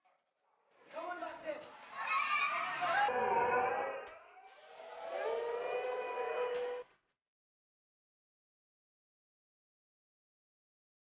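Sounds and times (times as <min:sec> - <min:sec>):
voices shouting: 0:01.6 - 0:06.8
long held pitched cries: 0:02.0 - 0:06.8.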